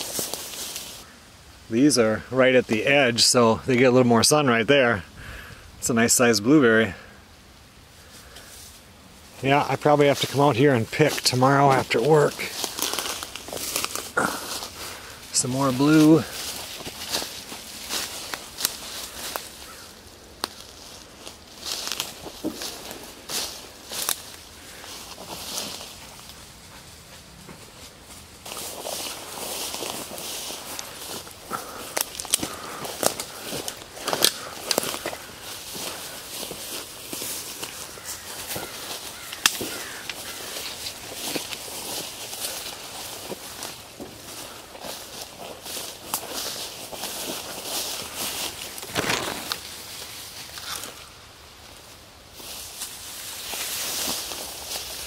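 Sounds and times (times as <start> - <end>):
footsteps through undergrowth: 0.0 - 1.2, 7.9 - 55.0
leaves brushing: 0.0 - 4.9, 7.8 - 55.0
sticks snapping: 31.6 - 35.3, 37.1 - 41.6.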